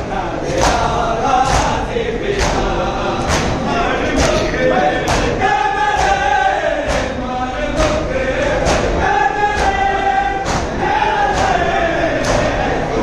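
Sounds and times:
voices chanting in unison: 0.0 - 13.0
sharp drum beat: 0.5 - 12.8.

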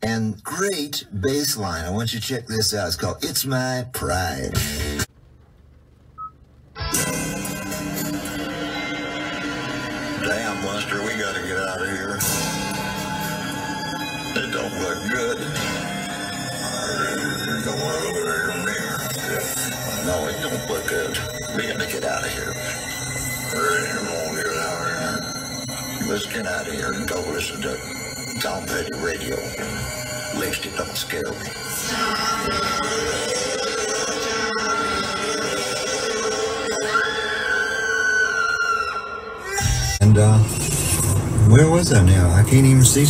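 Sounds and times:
music on car radio: 4.5 - 38.2, 39.4 - 43.0
radio voices: 14.2 - 33.2.

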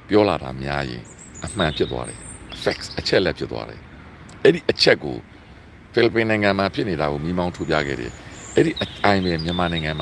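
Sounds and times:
man talking: 0.0 - 5.3, 5.9 - 10.0.

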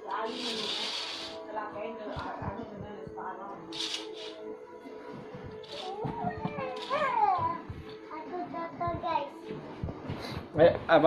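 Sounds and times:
child making wordless sounds: 5.8 - 9.4.

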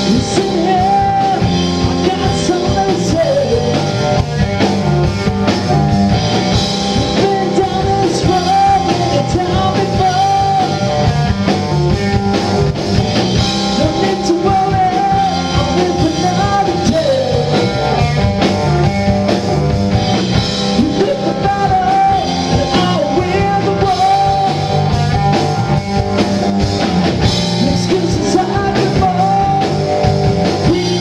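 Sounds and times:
man singing: 0.0 - 4.3, 6.9 - 11.2, 13.7 - 18.1, 20.7 - 25.4, 27.5 - 31.0
drum kit: 0.0 - 31.0
electric bass: 0.0 - 31.0
electric guitar: 0.0 - 31.0.

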